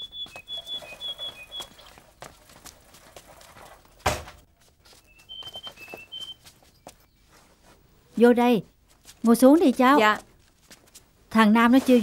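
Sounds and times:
small bird chirping: 0.0s - 2.1s, 5.0s - 7.5s.

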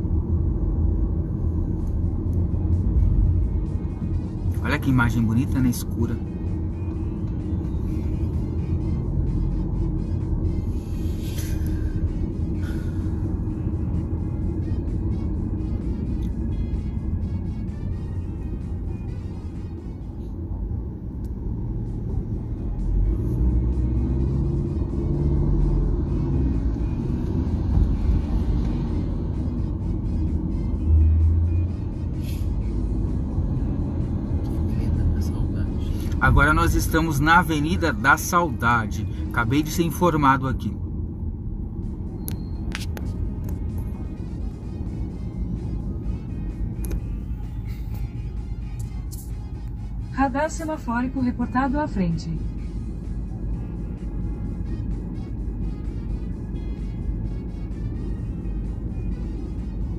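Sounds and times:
car driving rumble from inside: 0.0s - 59.9s
background music: 1.2s - 40.7s, 41.3s - 59.9s.

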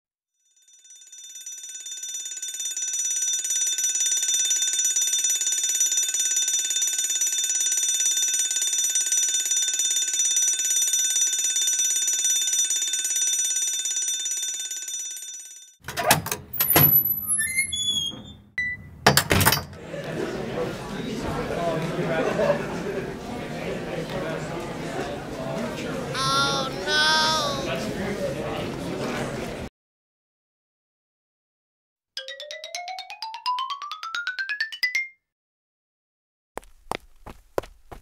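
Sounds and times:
electric school bell ringing: 0.8s - 15.7s
short high squeaks: 16.9s - 18.5s.

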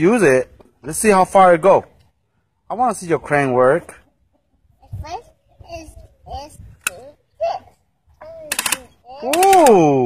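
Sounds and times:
high-pitched vocal sounds: 4.8s - 10.0s
sharp click: 8.5s - 9.8s.

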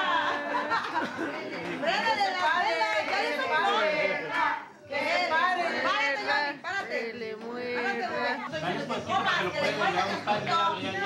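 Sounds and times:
group chatter: 0.0s - 11.0s.

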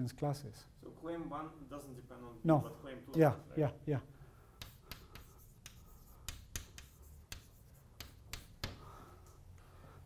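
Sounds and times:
chalk tapping and scratching: 4.5s - 9.4s.

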